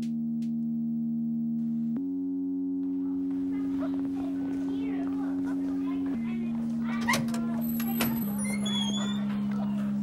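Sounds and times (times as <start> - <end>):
steady electronic tone: 0.0 - 10.0
faint scattered sounds: 2.8 - 10.0.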